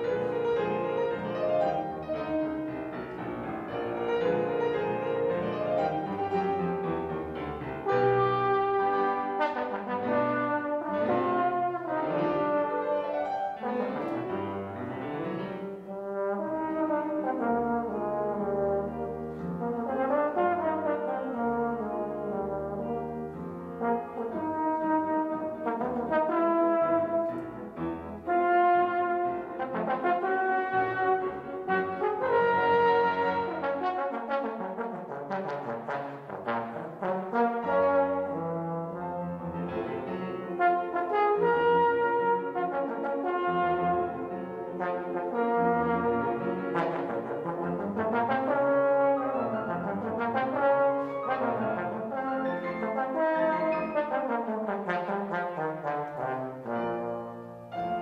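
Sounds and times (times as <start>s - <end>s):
trombone solo melody: 0.0s - 3.0s, 3.6s - 58.0s
piano accompaniment: 0.0s - 58.0s.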